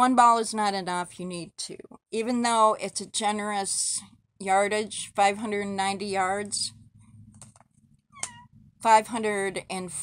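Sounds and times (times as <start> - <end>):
cat mewing: 8.2 - 8.5.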